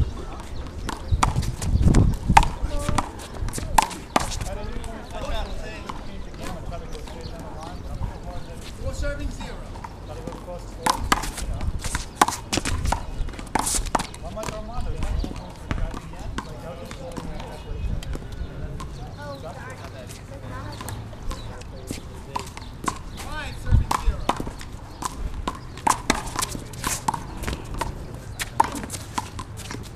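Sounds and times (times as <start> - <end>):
wind rumble on microphone: 0.0 - 9.6, 11.0 - 16.4, 17.2 - 18.7, 23.1 - 25.6
indistinct voices: 0.0 - 29.9
ball bouncing on concrete: 0.2 - 5.0, 5.8 - 7.2, 9.7 - 19.2, 20.6 - 29.9.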